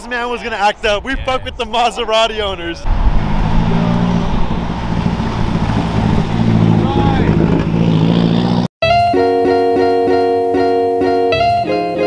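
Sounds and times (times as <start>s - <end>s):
cars driving by: 2.8s - 8.7s
plucked guitar music: 8.8s - 12.0s.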